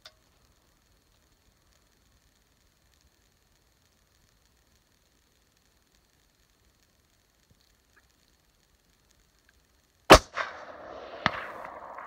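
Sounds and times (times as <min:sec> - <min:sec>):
bullet striking distant target: 0:10.1 - 0:12.0
rifle shot with echo: 0:10.1 - 0:12.0.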